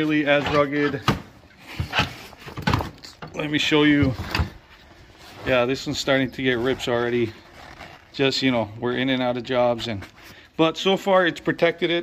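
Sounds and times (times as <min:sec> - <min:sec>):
fabric case rustling: 0:04.0 - 0:08.7.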